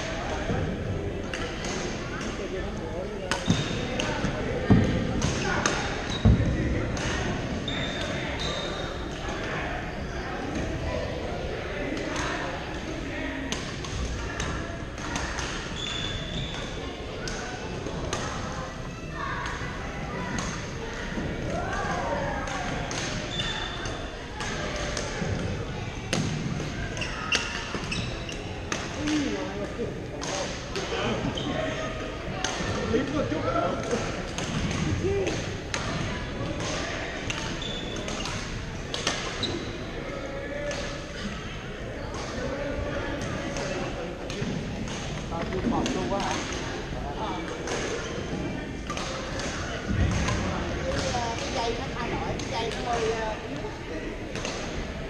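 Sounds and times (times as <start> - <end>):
players' voices: 0.0 - 55.0
rackets hitting shuttlecocks: 21.8 - 25.5.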